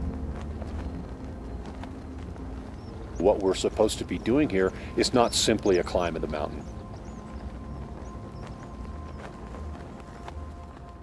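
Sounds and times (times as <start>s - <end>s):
low rumble: 0.0s - 3.2s.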